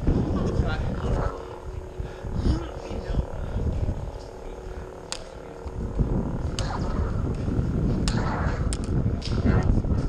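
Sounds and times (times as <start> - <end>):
lightsaber humming: 0.0 - 10.0.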